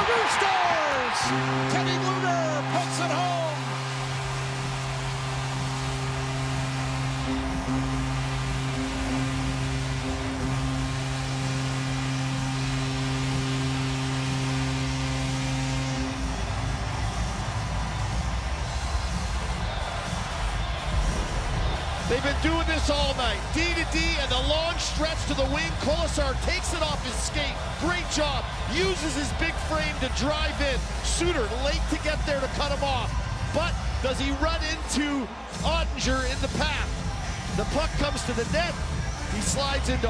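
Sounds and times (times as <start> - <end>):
arena goal horn blasts: 0.0 - 16.5
noisy crowd: 0.0 - 40.0
deep bass-heavy music: 1.2 - 40.0.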